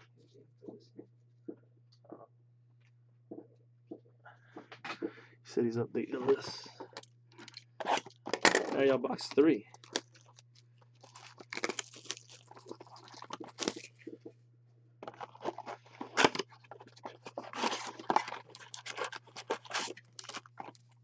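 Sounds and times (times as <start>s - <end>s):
plastic shrink-wrap crinkling: 9.2s - 14.2s, 15.0s - 21.0s.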